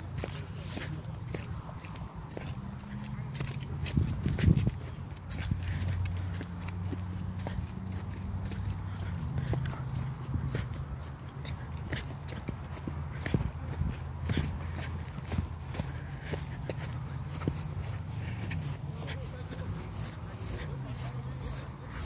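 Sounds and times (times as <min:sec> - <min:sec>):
footsteps on grass and dirt: 0:00.0 - 0:22.0.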